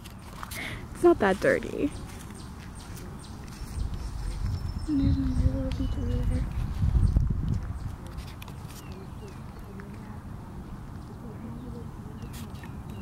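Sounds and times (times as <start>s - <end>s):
wind buffeting microphone: 0.6s - 13.0s.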